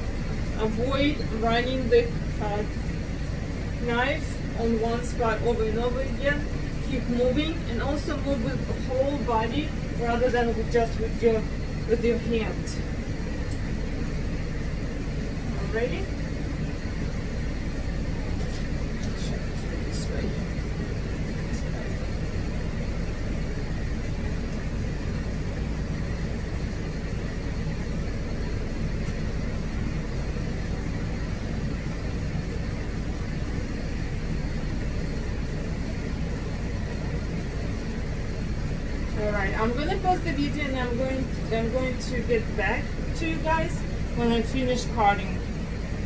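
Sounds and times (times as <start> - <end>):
low machine rumble and hum: 0.0 - 46.0.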